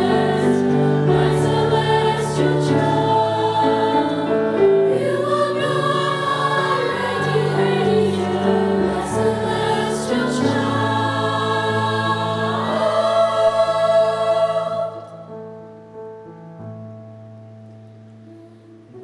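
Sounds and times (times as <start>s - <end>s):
choir singing lullaby: 0.0s - 16.2s, 17.8s - 19.0s.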